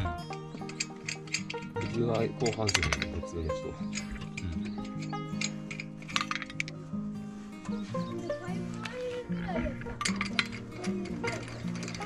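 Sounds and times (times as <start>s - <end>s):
metal lug nuts clinking: 0.0s - 6.9s, 9.7s - 12.0s
background music: 0.0s - 12.0s.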